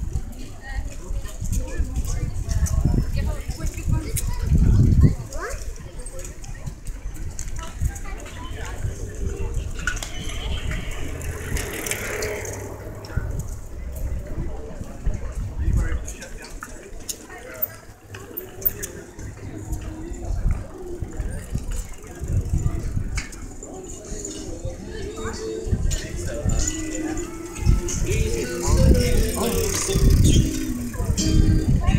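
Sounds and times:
riders talking and calling: 0.0 - 31.9
bike clicks and rattles: 3.6 - 14.2, 16.0 - 24.5, 25.9 - 31.8
low fluctuating rumble: 10.6 - 14.8.

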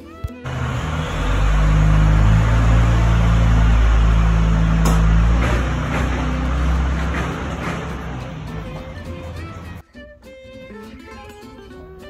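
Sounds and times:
large vehicle engine rumbling: 0.4 - 9.8.

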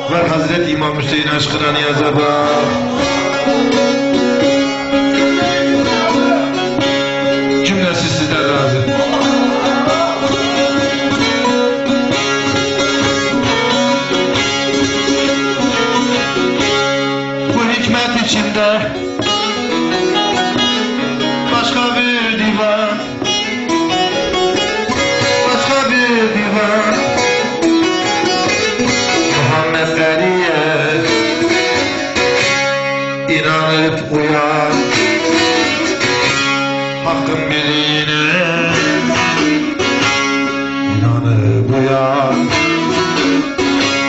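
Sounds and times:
man singing: 0.0 - 16.4, 17.4 - 32.0, 33.1 - 35.9, 36.8 - 44.0
long-necked lute playing: 0.0 - 44.0.

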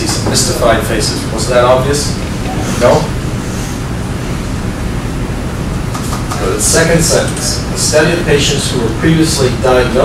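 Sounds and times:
classroom background hiss: 0.0 - 10.0.

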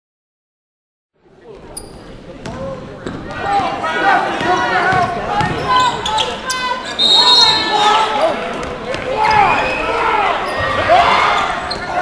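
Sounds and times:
spectators chatting: 1.2 - 12.0.

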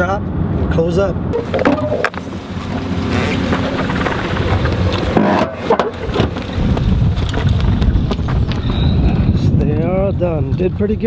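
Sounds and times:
wind buffeting microphone: 0.2 - 11.0.

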